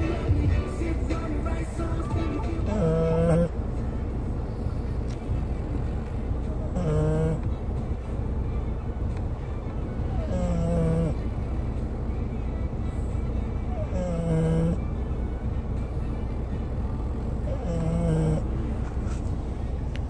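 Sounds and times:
low rumble of moving car: 0:00.0 - 0:20.0
dogs snoring: 0:02.5 - 0:03.6, 0:06.6 - 0:07.5, 0:10.1 - 0:11.3, 0:13.6 - 0:14.9, 0:17.4 - 0:19.3.

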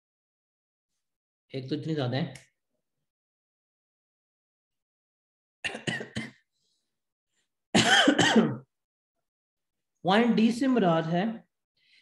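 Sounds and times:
man clearing his throat: 0:07.8 - 0:08.7.

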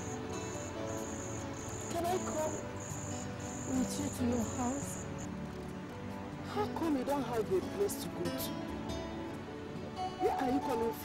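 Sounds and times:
crickets chirping: 0:00.0 - 0:05.6
soft music of held notes: 0:00.0 - 0:11.0.

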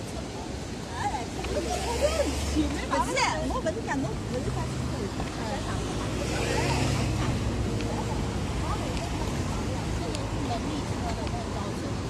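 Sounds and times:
vehicle engine and tyre noise: 0:00.0 - 0:12.0.

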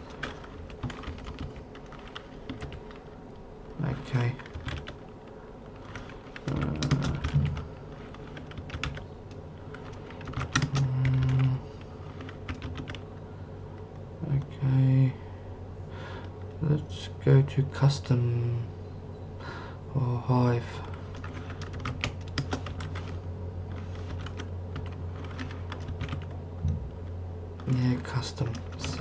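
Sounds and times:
computer keyboard typing: 0:00.0 - 0:03.2, 0:03.8 - 0:13.1, 0:20.8 - 0:26.4, 0:27.6 - 0:29.0
person humming or murmuring: 0:06.5 - 0:07.7, 0:10.6 - 0:11.8.

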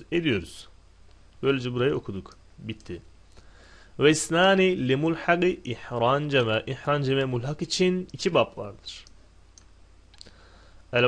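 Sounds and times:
computer mouse clicks: 0:09.0 - 0:10.3.

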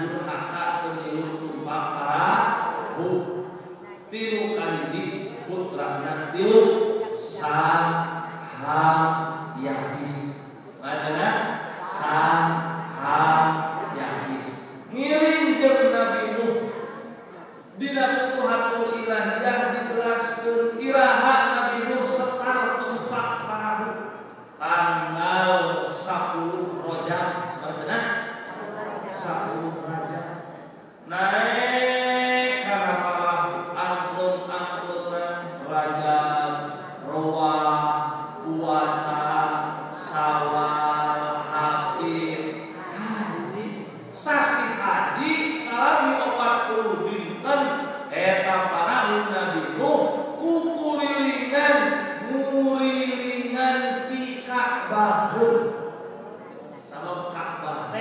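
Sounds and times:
man chanting into a microphone: 0:00.0 - 0:17.0, 0:17.7 - 0:30.4, 0:31.0 - 0:56.0.

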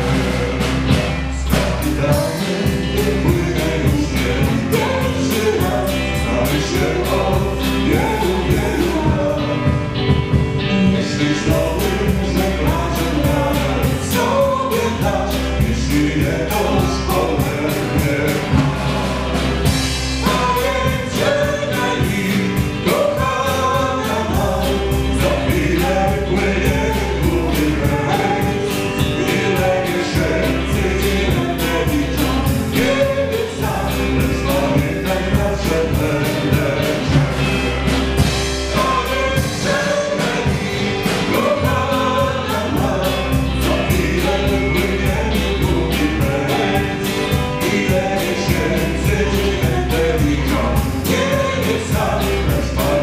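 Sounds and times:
drum kit beat: 0:00.0 - 0:53.0
electric guitar: 0:00.0 - 0:53.0
keyboard: 0:00.0 - 0:53.0.

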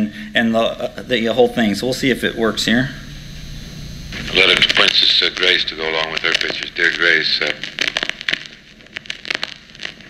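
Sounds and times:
recording surface hiss: 0:00.0 - 0:10.0
clicks and crackles: 0:04.1 - 0:10.0.

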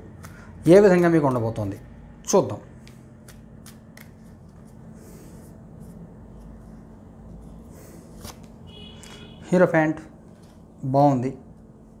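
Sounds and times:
soft rustle of cards: 0:02.7 - 0:09.2, 0:10.2 - 0:12.0
cards flicking: 0:02.8 - 0:04.6.

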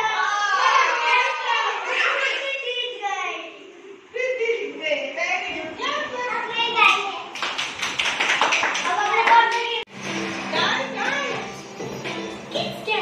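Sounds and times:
children's voices: 0:00.0 - 0:04.5, 0:05.7 - 0:07.4
fast hand clapping: 0:07.4 - 0:09.8
music with singing: 0:10.0 - 0:13.0.

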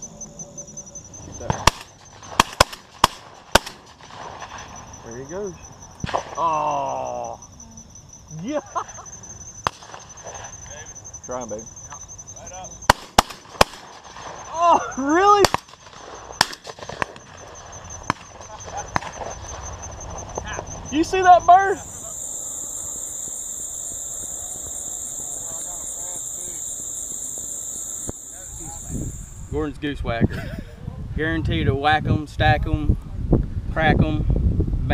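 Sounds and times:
high-pitched whine: 0:00.0 - 0:03.6, 0:04.4 - 0:30.0
shotgun shot: 0:01.4 - 0:04.7, 0:09.6 - 0:10.0, 0:12.9 - 0:14.4, 0:15.4 - 0:17.4.

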